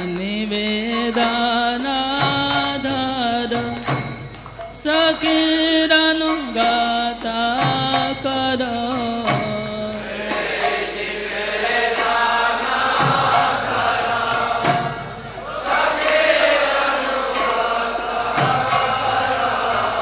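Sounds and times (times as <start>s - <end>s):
drum strokes: 0.0s - 20.0s
hand cymbals: 0.0s - 20.0s
congregation chanting in chorus: 9.9s - 20.0s.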